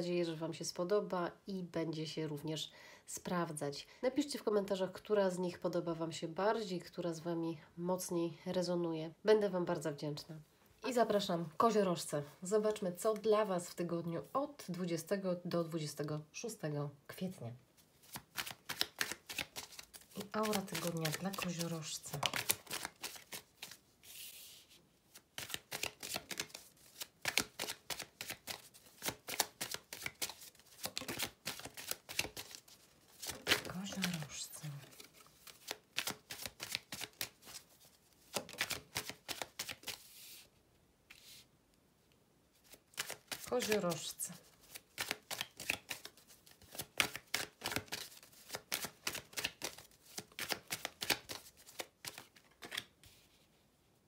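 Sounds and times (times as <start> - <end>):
cards shuffling: 18.0 - 40.5, 41.1 - 41.5, 42.6 - 53.3.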